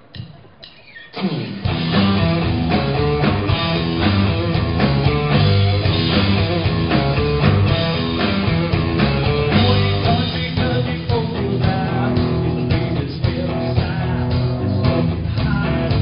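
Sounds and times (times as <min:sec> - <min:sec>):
rock band playing loud: 0:00.0 - 0:16.0.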